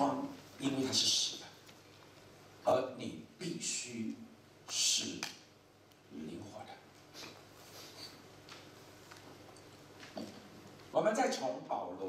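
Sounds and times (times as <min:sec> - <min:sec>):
man lecturing through a microphone: 0:00.0 - 0:01.6, 0:02.6 - 0:05.5, 0:06.1 - 0:06.9, 0:10.9 - 0:12.0.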